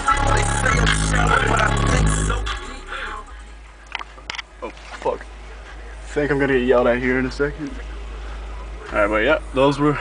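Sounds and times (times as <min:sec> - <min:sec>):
loud music with deep bass: 0:00.0 - 0:03.8.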